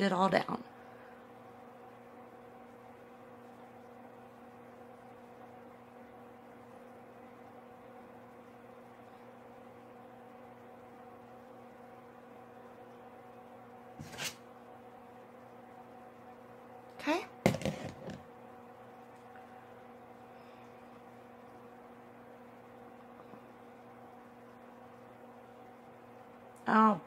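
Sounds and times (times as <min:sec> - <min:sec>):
faint low hum: 0:00.0 - 0:27.0.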